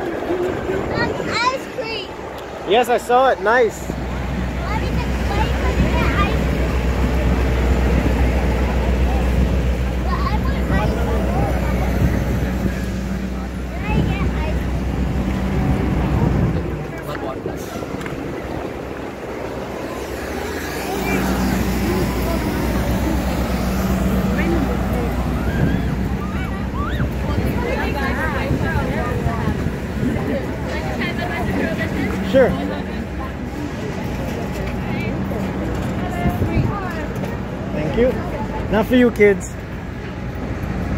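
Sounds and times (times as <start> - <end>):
wind on microphone: 0.0 - 2.6, 3.9 - 34.8, 35.5 - 37.2
traffic going past: 0.0 - 40.9
voices of passers-by: 0.0 - 40.9.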